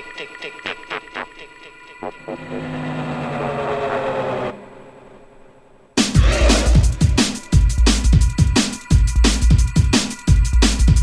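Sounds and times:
electronic synth tone: 2.0s - 5.9s.

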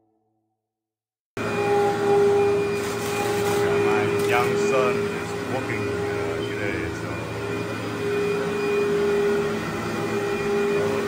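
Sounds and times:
vacuum cleaner running: 1.4s - 11.0s.

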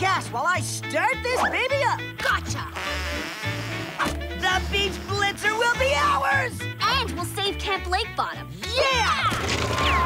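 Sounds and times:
cartoon music with bass line: 0.0s - 10.0s
gas hissing into tires: 2.8s - 4.0s.

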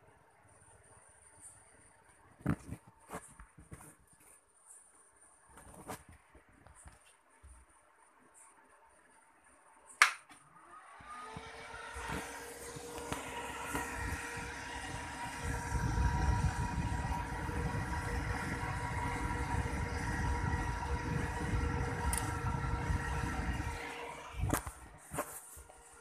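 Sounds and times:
steady hum with low rumble: 12.1s - 26.0s.

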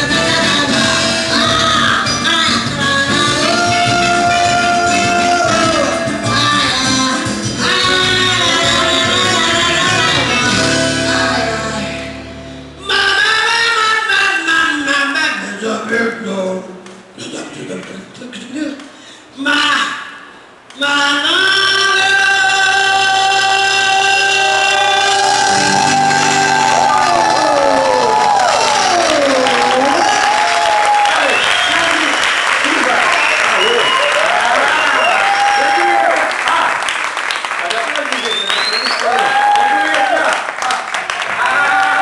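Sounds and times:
music long held chord: 9.9s - 12.9s
audience applause and cheering: 24.2s - 42.0s.

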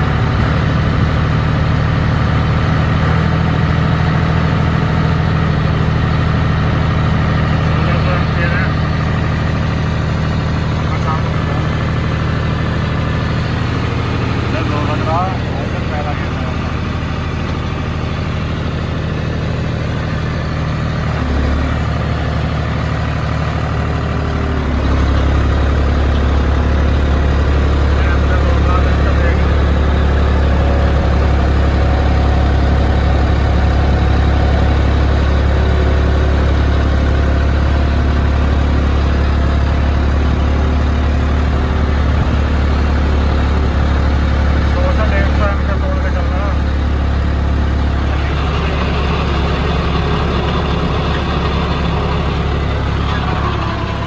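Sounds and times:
tractor diesel engine running: 0.0s - 54.0s.

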